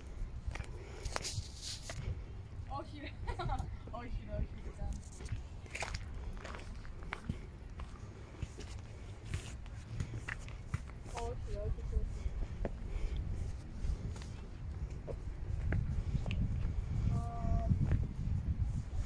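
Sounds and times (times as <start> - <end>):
low steady rumble: 0.0 - 19.0
footsteps on dirt path: 4.7 - 17.0.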